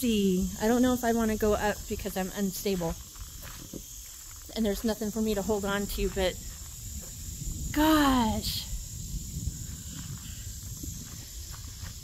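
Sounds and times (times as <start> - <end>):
high-pitched insect buzz: 0.0 - 12.0
wind rumble on microphone: 0.0 - 12.0.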